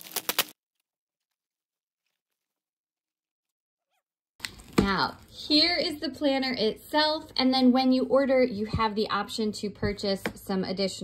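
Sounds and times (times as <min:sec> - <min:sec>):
bubble wrap crackling: 0:00.0 - 0:02.7.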